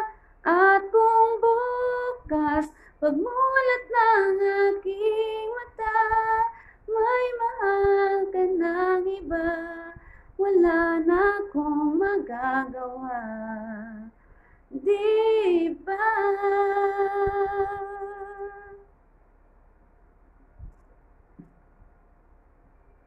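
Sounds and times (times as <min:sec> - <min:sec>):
woman singing a ballad: 0:00.0 - 0:18.8.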